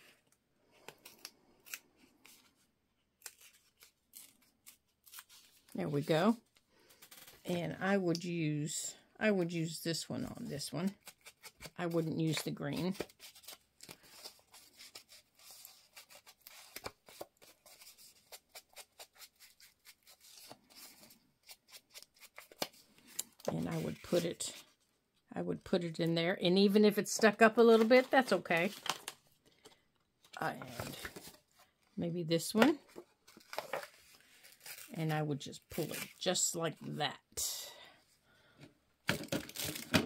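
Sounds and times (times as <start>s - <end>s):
paper rustling: 32.9s - 35.0s.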